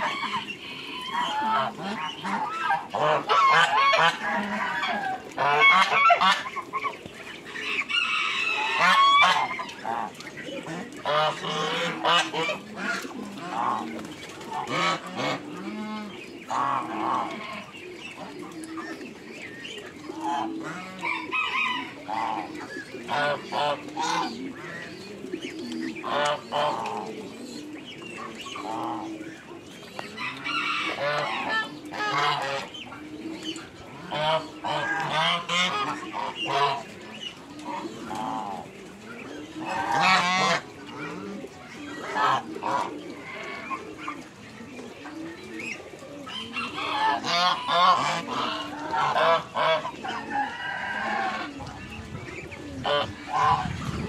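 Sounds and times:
geese and ducks honking: 0:00.0 - 0:54.0.

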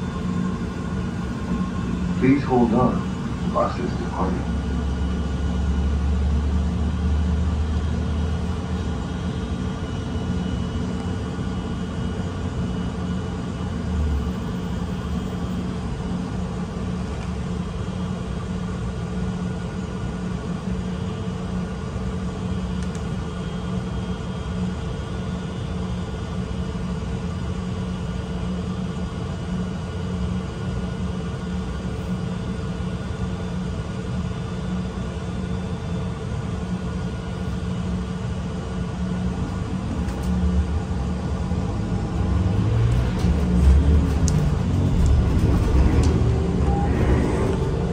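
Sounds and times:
deep low drone: 0:00.0 - 0:17.8, 0:38.2 - 0:47.9
bus engine and drivetrain hum: 0:00.0 - 0:47.9
road noise: 0:39.5 - 0:47.9.

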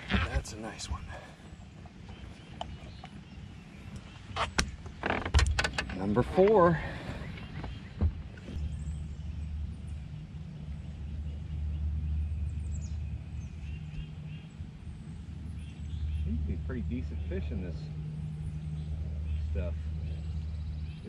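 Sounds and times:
trolling motor humming: 0:00.0 - 0:21.0.

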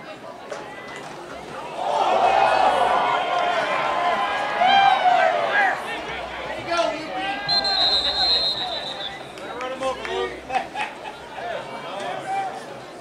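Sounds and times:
people shouting: 0:01.7 - 0:09.2
referee's whistle blast: 0:07.4 - 0:09.4.

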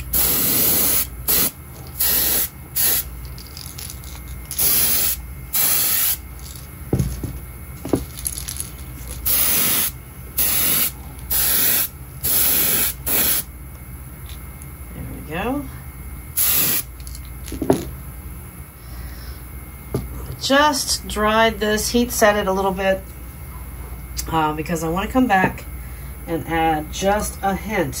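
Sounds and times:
airbrush spraying hiss: 0:00.0 - 0:03.1, 0:04.6 - 0:06.2, 0:09.2 - 0:13.5, 0:16.4 - 0:16.9
small knocks: 0:06.9 - 0:08.1.

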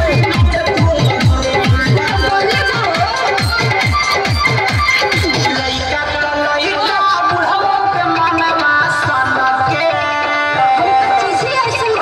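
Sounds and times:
dance song with drum beat: 0:00.0 - 0:12.0.

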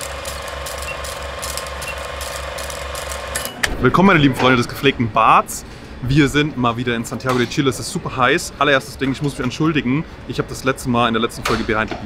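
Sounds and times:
film projector clatter: 0:00.0 - 0:03.6.

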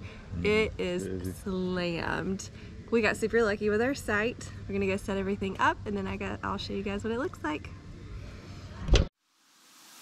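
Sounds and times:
faint outdoor background noise: 0:00.0 - 0:10.0
hiss: 0:09.5 - 0:10.0.

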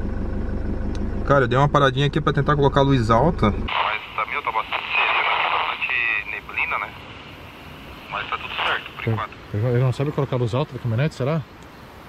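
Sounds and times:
muffled speech over walkie-talkie: 0:03.7 - 0:07.3, 0:07.9 - 0:11.1
radio static hiss: 0:03.7 - 0:12.0.

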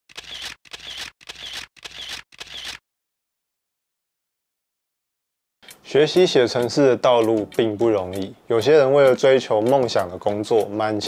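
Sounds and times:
mechanical sound effect bursts: 0:00.1 - 0:02.8.

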